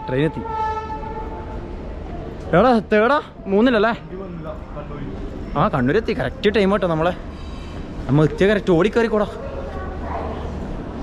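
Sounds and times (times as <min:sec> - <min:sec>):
train horn: 0:00.0 - 0:01.6.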